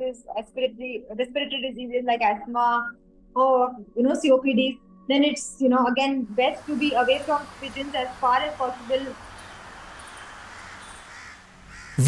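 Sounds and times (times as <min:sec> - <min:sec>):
outdoor background hush: 0:06.6 - 0:12.0
crows cawing: 0:09.3 - 0:12.0.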